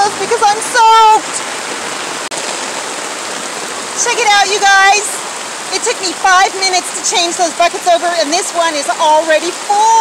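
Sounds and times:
heavy rain falling: 0:00.0 - 0:10.0.

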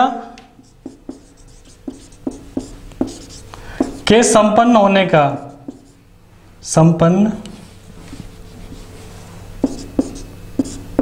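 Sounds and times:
marker pen writing on whiteboard: 0:00.6 - 0:04.3, 0:05.5 - 0:06.0, 0:07.5 - 0:11.0.

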